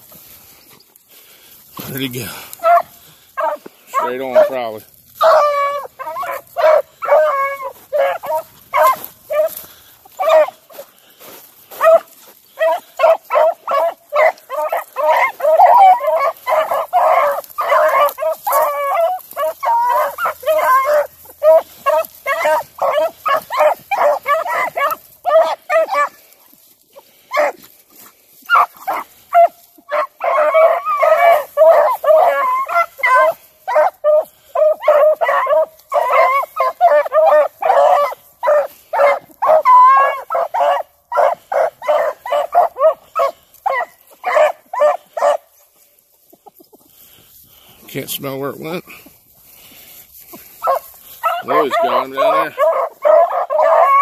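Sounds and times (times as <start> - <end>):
beagles baying and yelping: 0.0 - 54.0.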